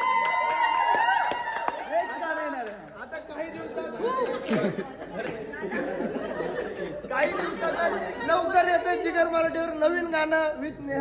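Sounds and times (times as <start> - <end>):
excited group chatter: 3.4 - 9.7.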